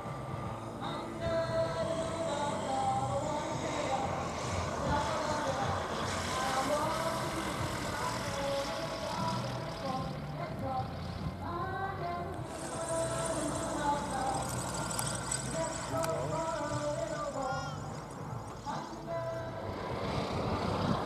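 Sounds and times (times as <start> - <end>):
light aircraft engine: 0.0 - 21.0.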